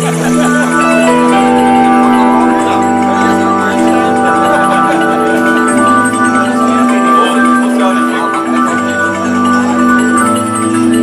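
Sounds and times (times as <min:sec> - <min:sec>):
organ chords: 0:00.0 - 0:11.0.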